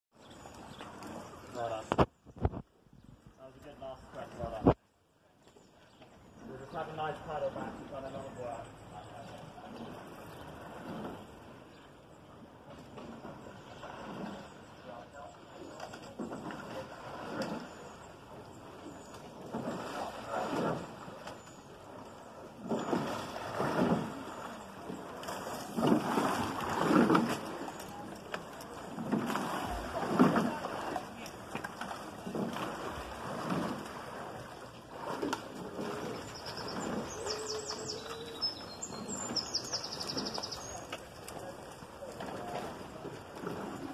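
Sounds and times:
rowing strokes: 0:06.4 - 0:43.9
voice calling: 0:35.8 - 0:40.9.

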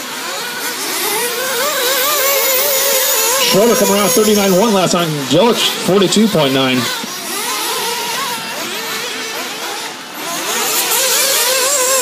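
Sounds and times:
rc buggy engines whining: 0:00.0 - 0:12.0.

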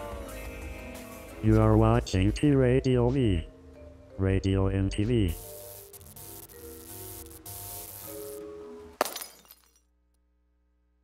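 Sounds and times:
glass shattering: 0:09.0 - 0:09.8.

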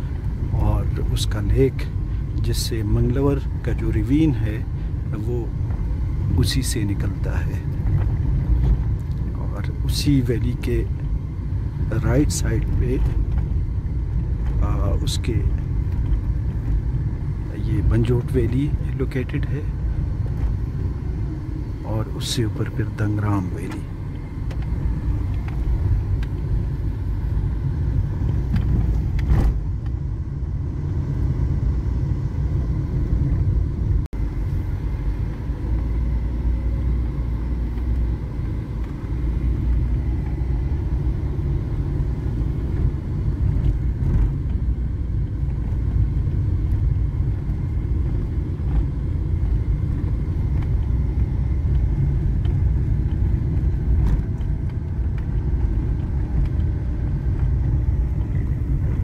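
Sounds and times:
engine and tyres rumbling: 0:00.0 - 0:59.0.

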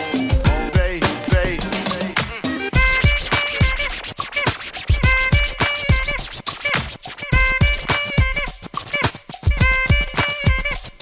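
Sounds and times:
held chord stabs: 0:00.0 - 0:11.0
hip hop beat: 0:00.0 - 0:11.0
turntable scratching: 0:00.0 - 0:11.0
deep kick drum: 0:00.3 - 0:01.9, 0:02.8 - 0:03.3.

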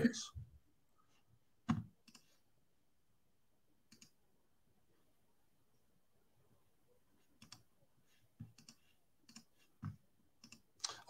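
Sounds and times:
computer keyboard clicks: 0:07.4 - 0:07.6.

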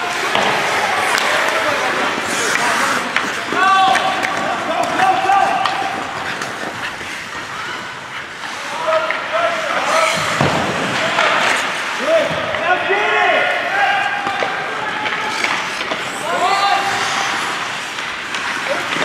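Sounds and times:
indistinct shouting voices: 0:00.0 - 0:06.6, 0:07.4 - 0:17.9.

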